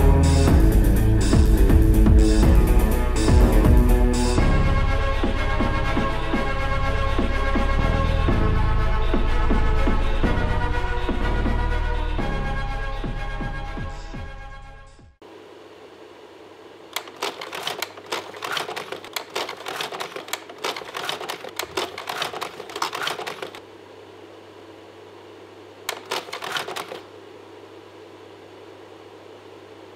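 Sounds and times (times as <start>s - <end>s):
rapid irregular clicking: 17.0s - 23.6s, 25.9s - 27.1s.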